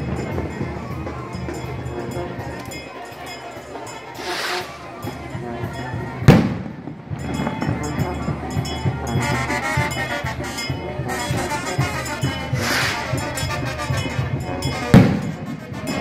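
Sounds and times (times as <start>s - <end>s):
band music with brass: 0.0s - 16.0s
steady drum beat: 3.7s - 16.0s
firework bang: 6.3s - 7.6s.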